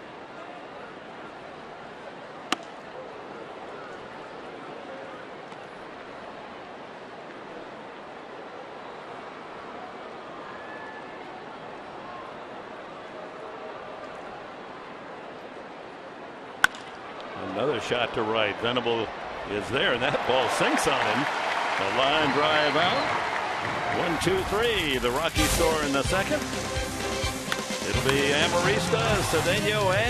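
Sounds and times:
bat cracking ball: 16.6 - 17.0
crowd murmur: 27.6 - 30.0.

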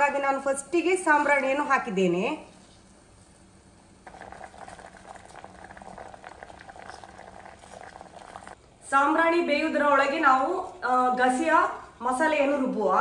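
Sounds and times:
water boiling in a pot: 2.8 - 8.6.

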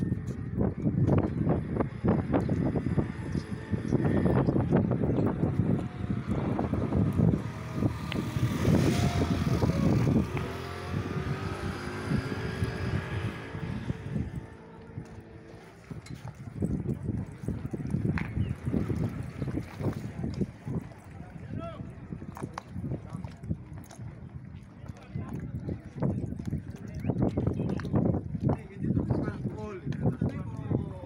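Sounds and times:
motor engine running: 0.0 - 21.4
wind gusting on microphone: 0.0 - 31.0.

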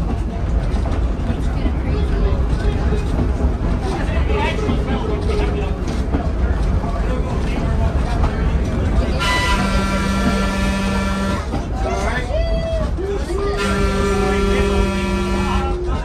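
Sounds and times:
rail car rumbling on rails: 0.0 - 16.0
train horn blast: 9.2 - 11.6, 13.5 - 15.9.

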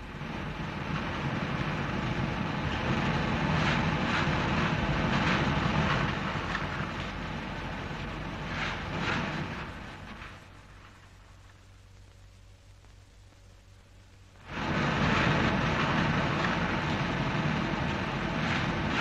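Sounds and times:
machinery rattling rumble: 0.0 - 11.4, 14.4 - 19.0.

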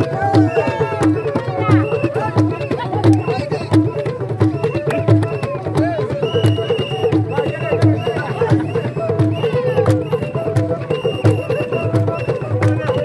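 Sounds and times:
crowd singing: 0.0 - 3.3
hand drumming: 0.0 - 13.0.

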